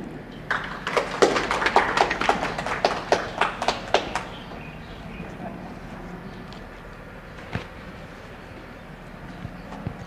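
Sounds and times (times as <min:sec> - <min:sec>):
group hand clapping: 0:00.5 - 0:04.6.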